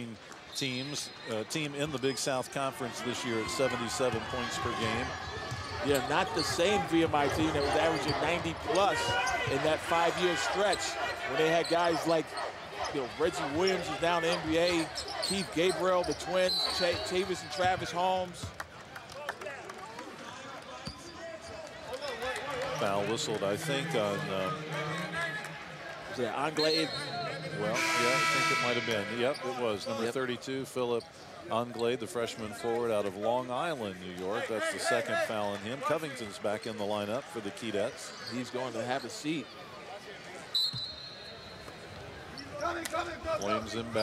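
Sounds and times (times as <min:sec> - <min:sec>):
murmur of arena crowd: 0:00.0 - 0:44.0
referee's whistle: 0:16.4 - 0:17.2, 0:26.6 - 0:29.6, 0:40.5 - 0:41.7.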